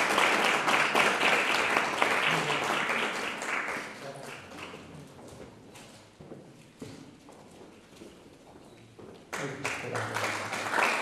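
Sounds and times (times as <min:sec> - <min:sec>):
faint hall ambience: 0:00.0 - 0:11.0
footsteps on wooden floor: 0:05.1 - 0:09.3.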